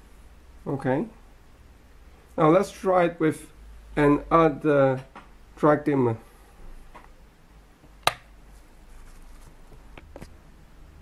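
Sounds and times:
rocker switch click: 0:08.0 - 0:08.3.

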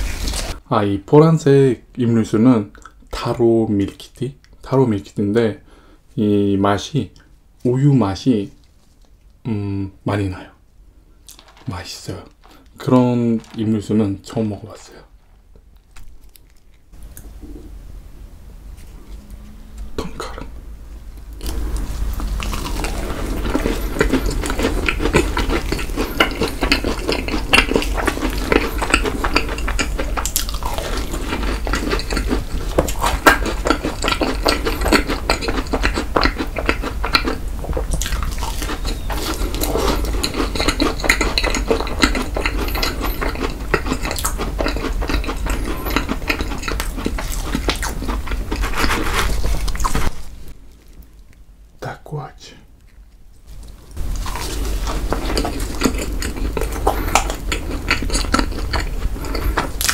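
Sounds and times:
soft crunching of macaron shell: 0:11.3 - 0:17.6
sticky chewing clicks and smacks: 0:22.2 - 0:50.0, 0:52.8 - 0:59.9.

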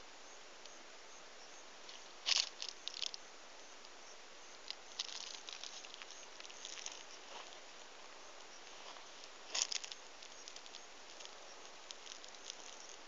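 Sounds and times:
faint hiss: 0:00.0 - 0:13.0
rustles and scrapes: 0:01.8 - 0:03.2, 0:04.6 - 0:13.0.

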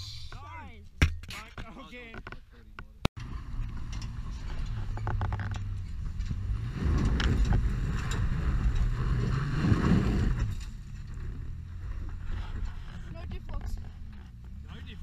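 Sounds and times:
engine working hard under load: 0:03.2 - 0:15.0.

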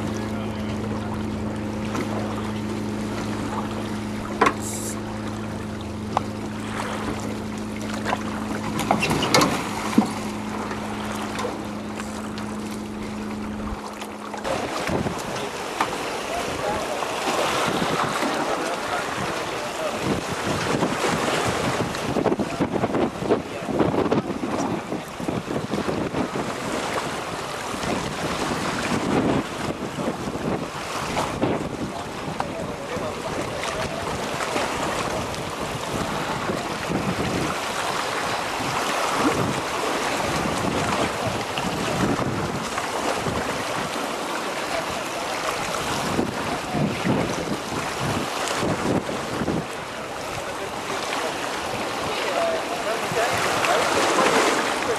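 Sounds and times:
steady low hum: 0:00.0 - 0:14.5
water splashes: 0:00.0 - 0:54.9
waves lapping at shore: 0:00.0 - 0:54.9
wind buffeting microphone: 0:00.0 - 0:54.9.

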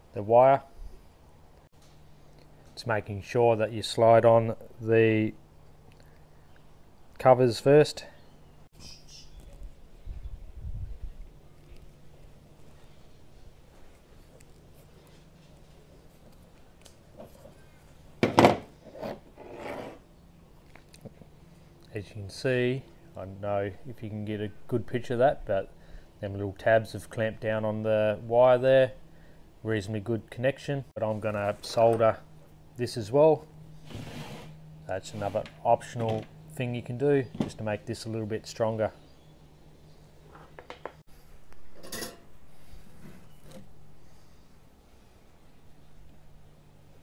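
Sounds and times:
loud scrape on microphone: 0:18.8 - 0:20.1, 0:33.8 - 0:35.5.

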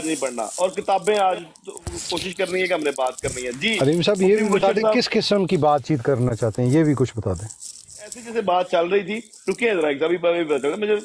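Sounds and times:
men talking on voice call: 0:00.0 - 0:11.0.

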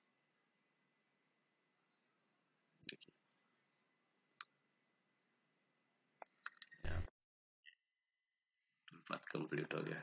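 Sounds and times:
computer mouse clicks: 0:06.2 - 0:06.8.

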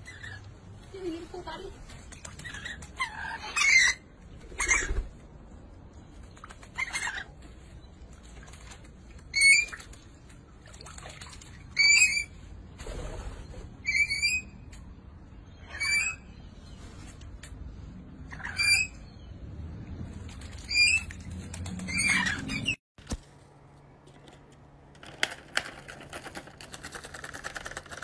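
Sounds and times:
wings fluttering: 0:00.1 - 0:03.2, 0:04.3 - 0:05.3, 0:05.9 - 0:13.8, 0:20.0 - 0:23.2, 0:25.0 - 0:28.0
water splashing: 0:08.3 - 0:11.8.

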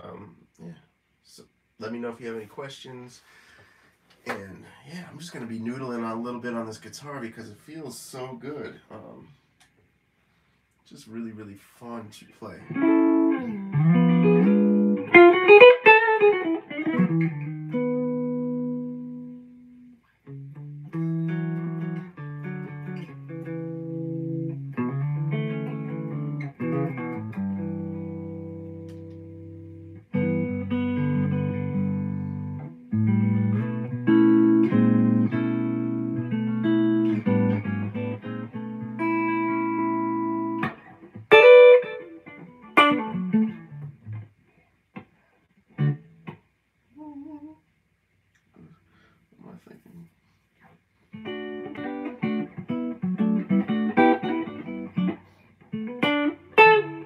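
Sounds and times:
electric guitar noodling: 0:12.6 - 0:19.4, 0:20.3 - 0:44.2, 0:51.1 - 0:57.0.

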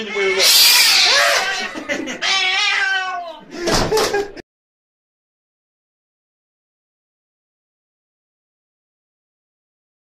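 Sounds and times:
door banging: 0:03.6 - 0:04.3.

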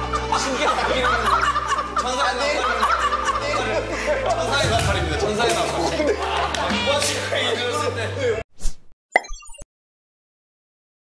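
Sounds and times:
cartoon plop sound effect: 0:09.2 - 0:09.6.

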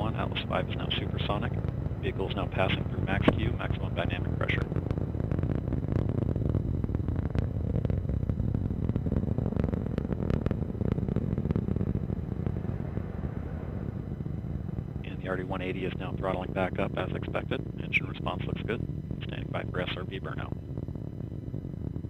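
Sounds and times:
rocket engine rumble with crackling: 0:00.0 - 0:22.0.

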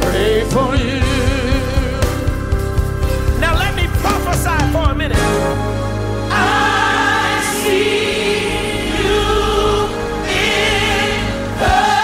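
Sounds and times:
gospel choir holding chords: 0:00.0 - 0:12.0
low instrumental backing: 0:00.0 - 0:12.0.

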